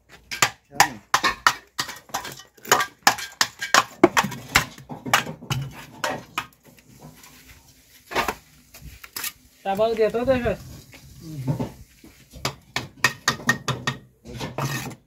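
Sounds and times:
trowel clinking on bricks: 0.2 - 6.6
trowel scraping mortar: 1.1 - 9.6, 10.6 - 15.0.

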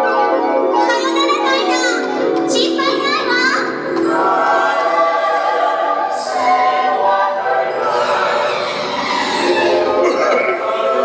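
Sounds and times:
choir singing over loudspeakers: 2.0 - 11.0.

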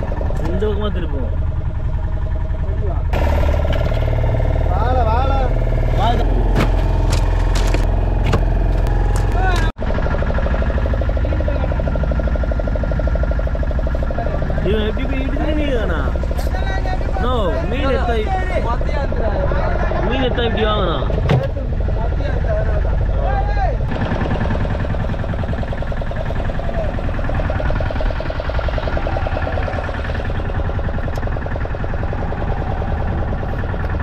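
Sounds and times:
boat engine humming: 0.0 - 34.0
men talking: 0.3 - 1.4, 4.7 - 6.7, 14.1 - 23.9.

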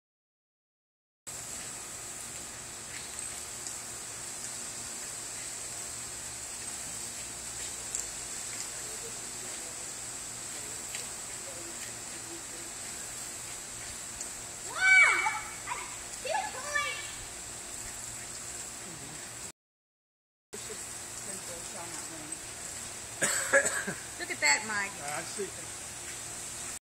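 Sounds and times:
water toy spraying hiss: 1.3 - 19.5, 20.6 - 26.8
short pitched cries: 14.7 - 16.0.

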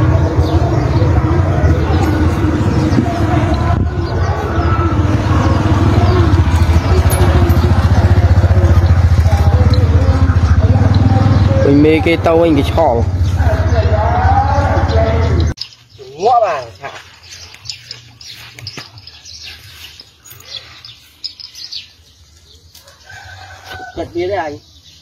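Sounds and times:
engine running: 0.0 - 15.6
faint voices: 0.0 - 21.8.

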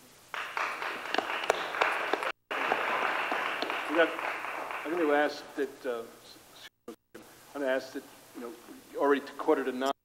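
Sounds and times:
audience applauding: 0.3 - 5.6.

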